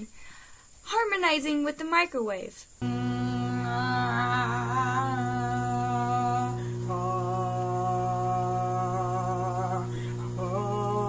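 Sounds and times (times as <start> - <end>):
microwave oven humming: 2.8 - 11.0
woman humming held notes: 2.8 - 11.0.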